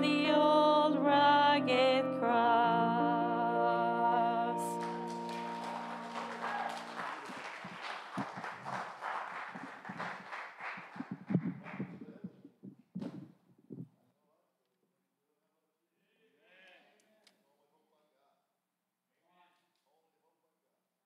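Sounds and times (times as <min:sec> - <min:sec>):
backing track closing chord: 0:00.9 - 0:07.2
footsteps: 0:05.4 - 0:13.9
microphone being handled: 0:07.6 - 0:08.8, 0:09.5 - 0:14.0
knocks and bumps: 0:11.0 - 0:13.9.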